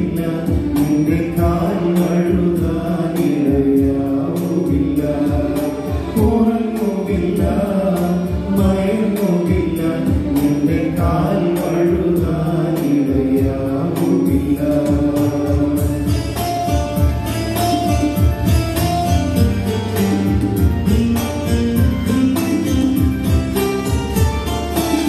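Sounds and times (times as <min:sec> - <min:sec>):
steady percussion beat: 0:00.0 - 0:25.0.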